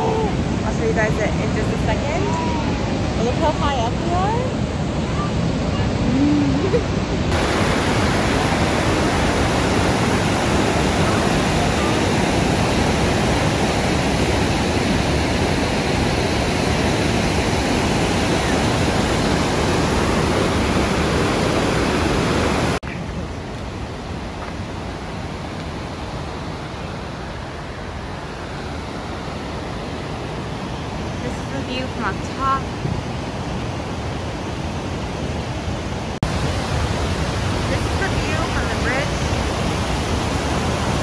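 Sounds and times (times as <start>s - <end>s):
waterfall rushing: 0.0s - 41.0s.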